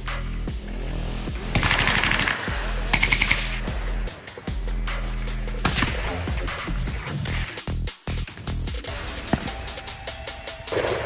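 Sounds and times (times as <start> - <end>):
background music with steady beat: 0.0 - 11.0
automatic gunfire bursts: 1.6 - 3.6.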